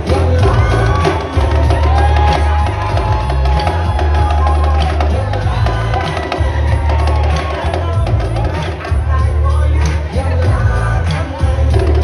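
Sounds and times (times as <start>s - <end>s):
backing track with heavy bass: 0.0s - 12.0s.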